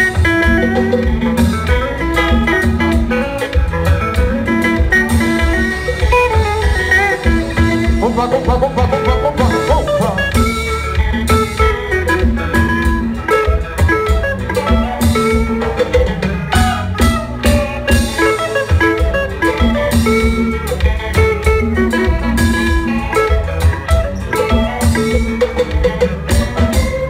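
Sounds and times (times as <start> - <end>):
live band playing instrumental: 0.0 - 27.0.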